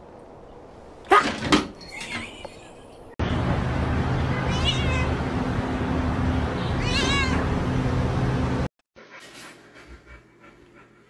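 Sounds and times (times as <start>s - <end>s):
cat crying: 4.3s - 5.2s, 6.6s - 7.5s.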